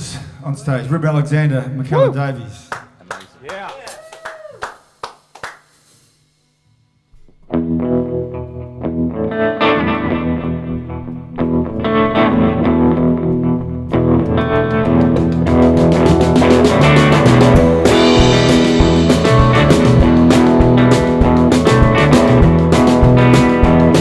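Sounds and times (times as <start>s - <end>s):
rock band playing: 7.5s - 24.0s.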